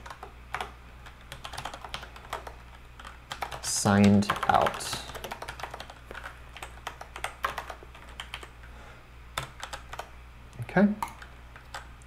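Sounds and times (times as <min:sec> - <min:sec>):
computer keyboard typing: 0:00.0 - 0:08.6, 0:09.4 - 0:10.1, 0:11.0 - 0:12.0.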